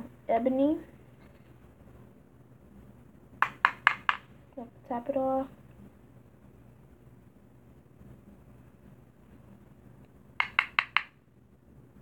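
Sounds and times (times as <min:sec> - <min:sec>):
brush tapping on powder container: 0:03.4 - 0:04.3, 0:10.4 - 0:11.2.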